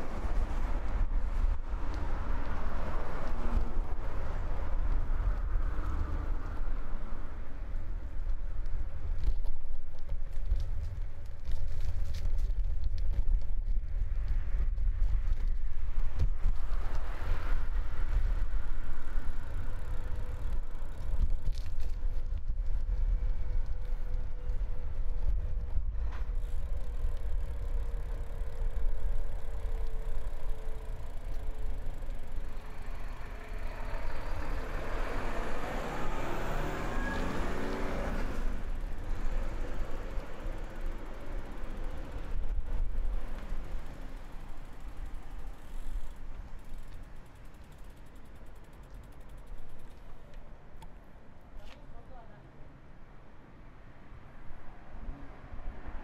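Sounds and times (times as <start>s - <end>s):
wind rumble on microphone: 0.0s - 50.4s
road traffic: 0.0s - 56.0s
vehicle passing: 26.4s - 46.8s.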